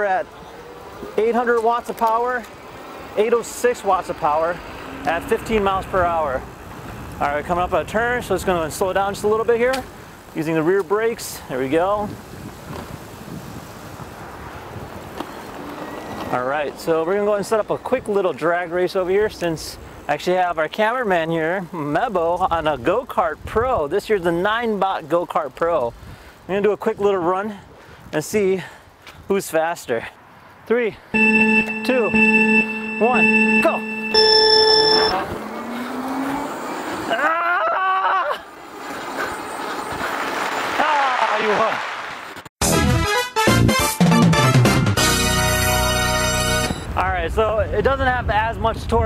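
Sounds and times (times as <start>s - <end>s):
bike tyre noise on pavement: 0.0s - 20.2s, 38.4s - 42.5s
wind rush: 11.8s - 15.7s
electronic race-start beep: 31.2s - 35.2s.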